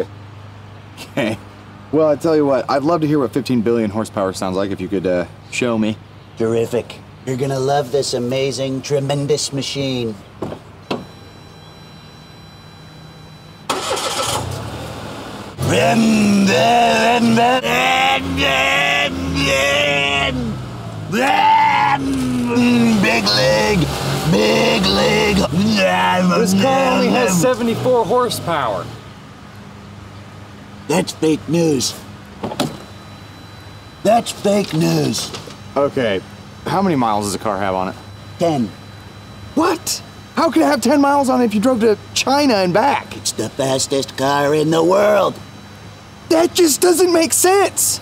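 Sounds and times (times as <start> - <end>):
low steady hum: 9.8 - 14.5, 15.5 - 48.0
car door shutting: 10.4 - 11.1, 32.4 - 33.0
car engine starting: 13.4 - 29.1.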